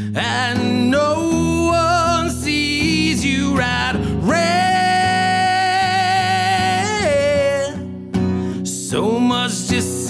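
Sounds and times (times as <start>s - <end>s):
acoustic guitar strum: 0.0s - 10.0s
man singing: 0.0s - 10.0s.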